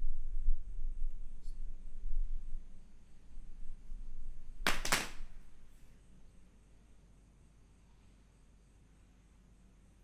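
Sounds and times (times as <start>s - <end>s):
hand claps: 4.6s - 5.4s.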